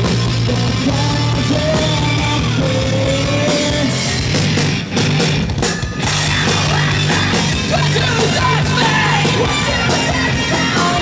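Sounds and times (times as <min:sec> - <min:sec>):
bass guitar: 0:00.0 - 0:11.0
distorted electric guitars: 0:00.0 - 0:11.0
drum kit: 0:00.0 - 0:11.0.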